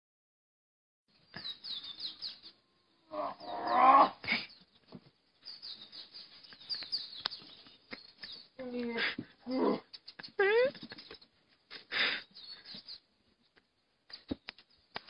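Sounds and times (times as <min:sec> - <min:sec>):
birds chirping: 0:01.1 - 0:15.0.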